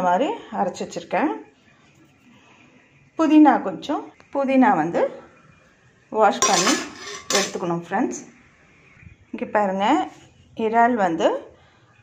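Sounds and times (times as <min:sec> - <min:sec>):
woman speaking: 0:00.0 - 0:01.4, 0:03.2 - 0:05.3, 0:06.2 - 0:08.3, 0:09.4 - 0:11.5
metallic clink of kitchen vessel: 0:06.4 - 0:07.7.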